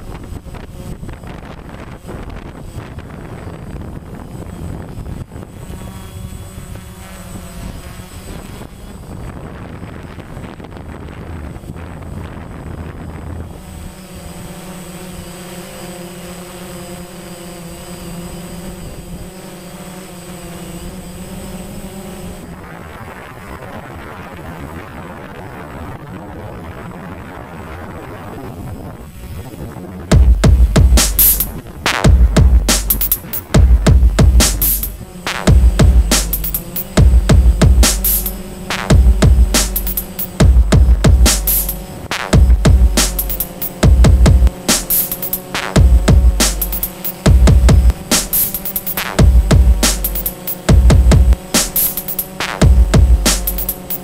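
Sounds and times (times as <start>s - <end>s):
wind rushing across microphone: 0.0s - 15.0s, 22.2s - 44.8s
drone propellers whirring: 0.0s - 54.0s.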